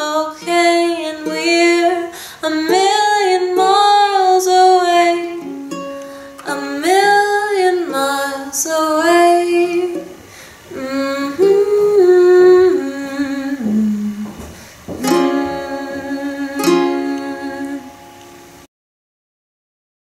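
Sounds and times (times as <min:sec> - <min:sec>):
strummed ukulele: 0:00.0 - 0:14.2, 0:14.9 - 0:18.6
woman singing: 0:00.0 - 0:18.3.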